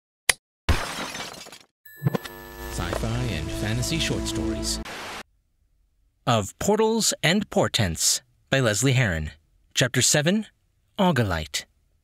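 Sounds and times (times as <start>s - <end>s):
faint high whine: 1.9s - 5.2s
static hiss: 2.2s - 5.2s.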